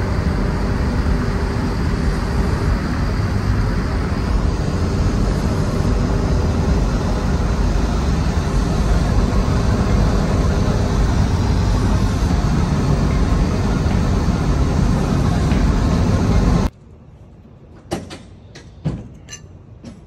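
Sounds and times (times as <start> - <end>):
car engine cruising: 0.0 - 16.7.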